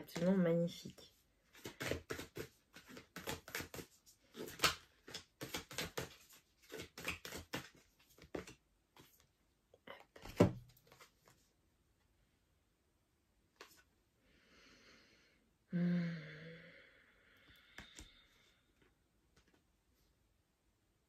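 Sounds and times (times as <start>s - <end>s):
cards being shuffled: 1.5s - 9.3s, 10.1s - 11.4s.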